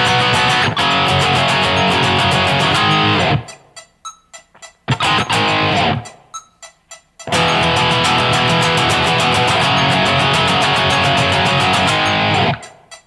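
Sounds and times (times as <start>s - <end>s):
distorted electric guitar riff: 0.0s - 3.7s, 4.9s - 6.3s, 7.2s - 12.9s.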